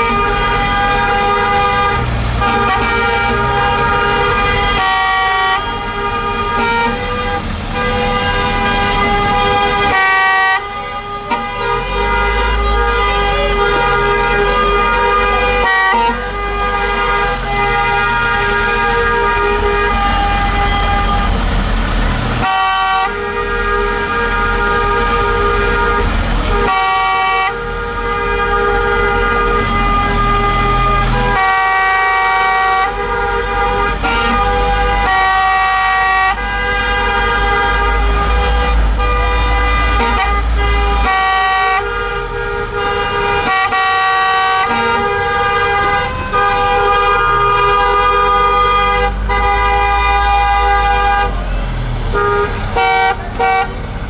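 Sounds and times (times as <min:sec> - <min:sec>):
low engine rumble: 0:00.0 - 0:54.0.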